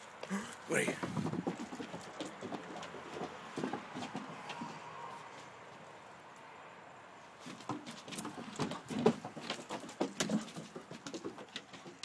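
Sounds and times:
puppy paws pattering on wood: 0.0s - 6.0s, 7.4s - 12.0s.

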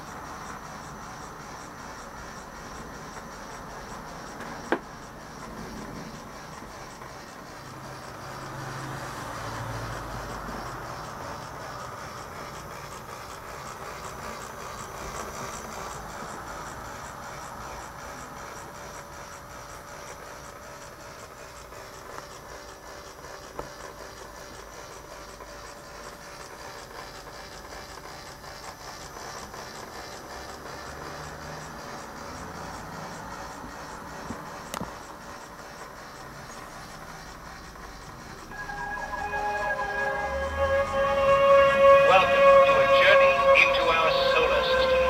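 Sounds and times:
toy motor and gears running: 0.0s - 45.0s.

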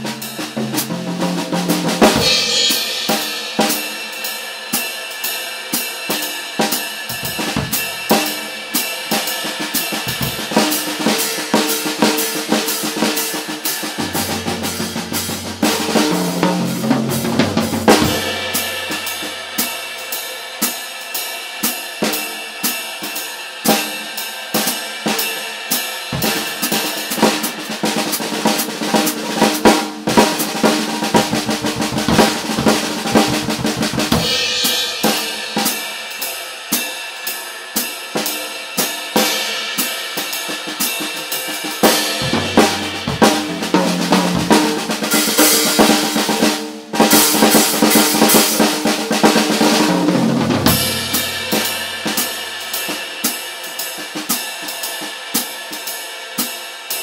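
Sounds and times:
jazz drum kit solo: 0.0s - 57.0s.

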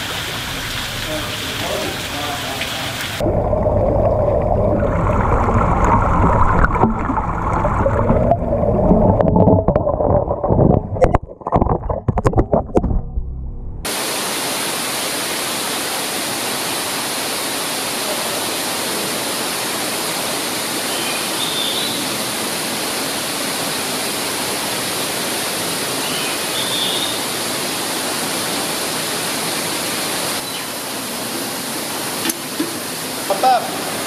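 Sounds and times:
waterfall splashing over rocks: 0.0s - 3.3s, 13.9s - 34.0s.

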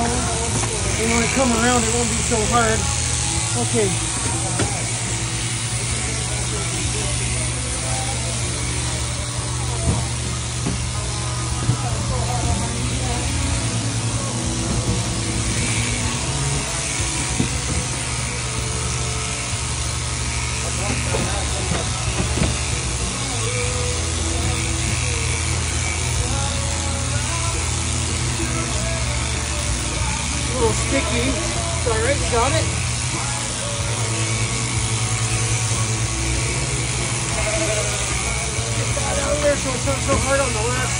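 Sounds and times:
shearing handpiece clipping fleece: 0.0s - 40.9s
shearing machine hum: 0.0s - 40.9s.

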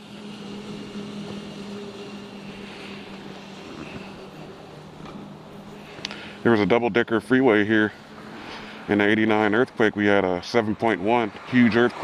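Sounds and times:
low motor hum: 0.0s - 12.0s
outdoor noise: 0.0s - 12.0s.

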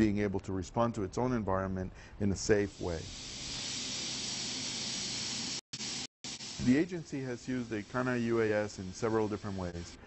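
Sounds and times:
steady hiss: 2.4s - 10.0s.

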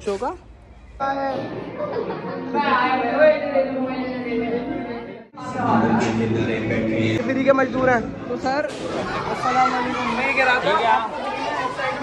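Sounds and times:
young men chattering: 1.0s - 12.0s.

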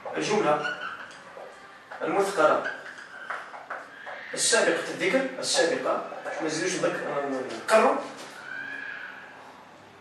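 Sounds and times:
whiteboard marker squeaking: 0.0s - 9.2s.

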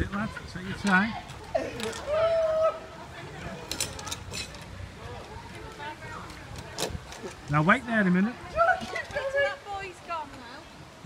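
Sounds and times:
outdoor background noise: 0.0s - 11.0s.

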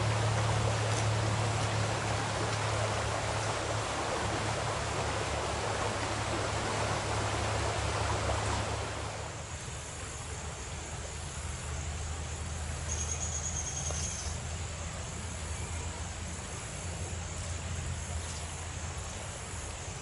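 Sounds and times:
creek water rushing over gravel: 0.0s - 20.0s
steady low hum: 0.0s - 20.0s.

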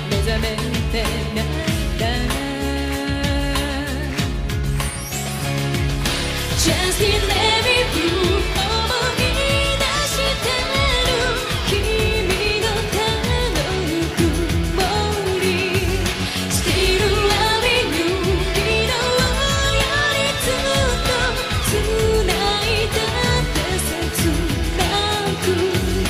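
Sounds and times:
woman singing into a microphone: 0.0s - 4.6s, 6.5s - 26.0s
band with drums bass and guitar: 0.0s - 26.0s.

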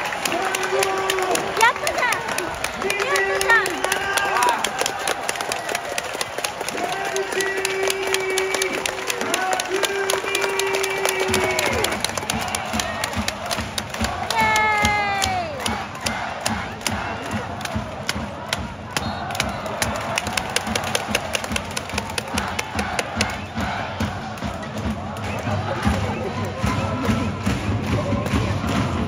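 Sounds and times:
crowd cheering: 0.0s - 29.0s
crowd chanting: 8.1s - 29.0s
rapid drum beat: 10.8s - 29.0s.

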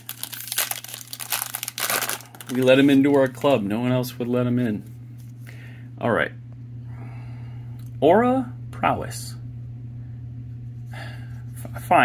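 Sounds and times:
foil wrapper tearing and crinkling: 0.0s - 3.6s.

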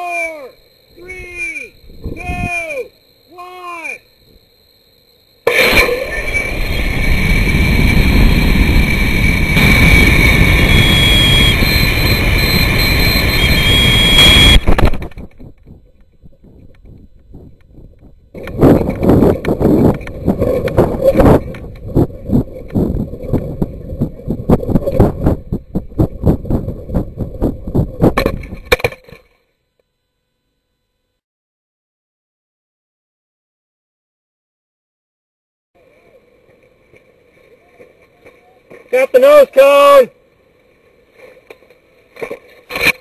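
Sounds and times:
wind buffeting microphone: 1.8s - 2.5s, 6.2s - 28.7s
thin high whine: 5.4s - 31.2s
camera thudding on grass: 14.6s - 15.8s.

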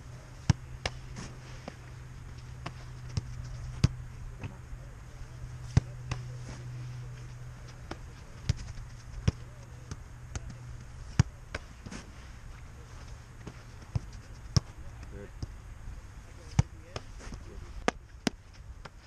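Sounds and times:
low steady hum: 0.0s - 19.0s
faint voices: 3.4s - 17.9s.

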